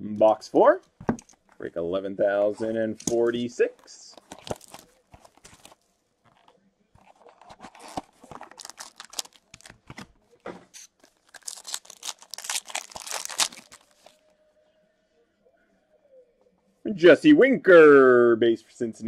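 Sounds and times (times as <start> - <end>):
clicks and rustles of handling: 2.9 - 11.3
plastic wrapper tearing and crinkling: 4.2 - 10.1, 10.8 - 14.2.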